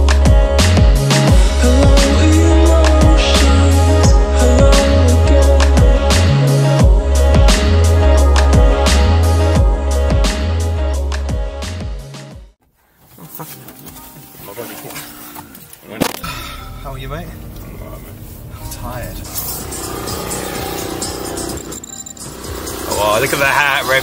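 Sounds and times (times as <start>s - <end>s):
car engine and road rumble: 15.3s - 24.0s.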